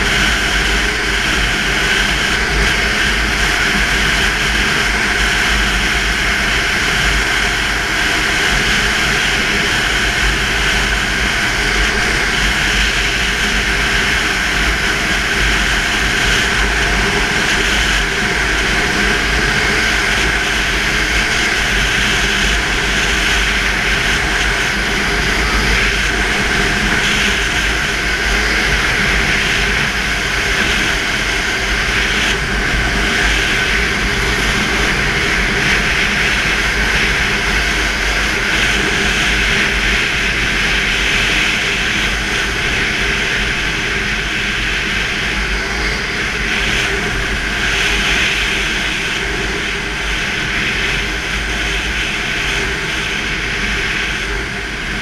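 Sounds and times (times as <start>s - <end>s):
snowmobile engine running: 0.0s - 55.0s
wind rushing over microphone: 0.0s - 55.0s.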